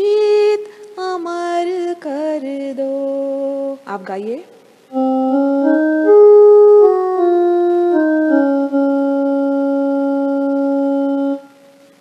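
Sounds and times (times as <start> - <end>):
electronic keyboard descending phrase: 4.9 - 11.7.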